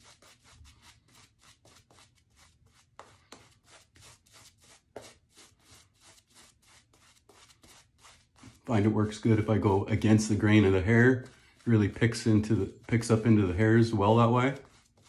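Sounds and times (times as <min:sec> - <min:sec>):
shaving brush strokes on face: 0:00.0 - 0:15.0.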